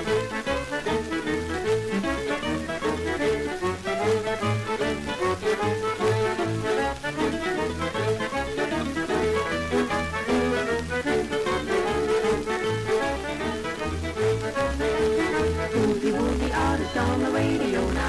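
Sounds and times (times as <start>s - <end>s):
boogie-woogie band music: 0.0s - 18.0s.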